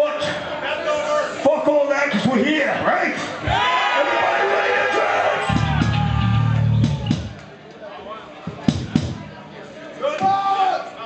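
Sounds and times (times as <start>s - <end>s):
drum strikes: 5.5s - 7.5s, 8.5s - 9.4s.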